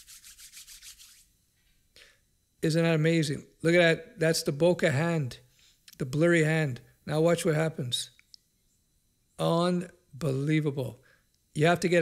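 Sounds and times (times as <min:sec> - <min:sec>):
palms rubbing together: 0:00.0 - 0:01.3.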